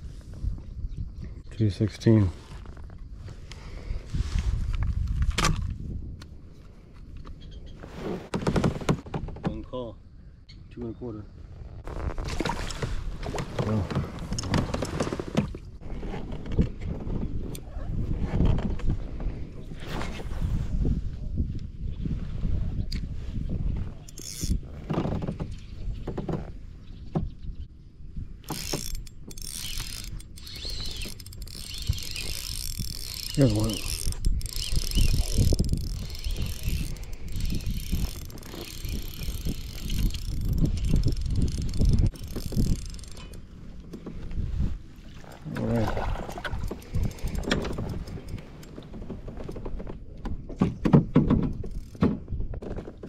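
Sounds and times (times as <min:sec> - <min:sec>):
wind rumble: 0:00.0 - 0:09.1, 0:11.2 - 0:49.8
spinning reel clicking: 0:28.6 - 0:43.4.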